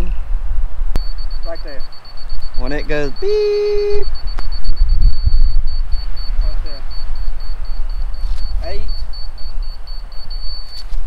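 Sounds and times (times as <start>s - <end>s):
rapid high-pitched beeps: 1.0s - 11.0s
low rumble: 4.0s - 10.6s.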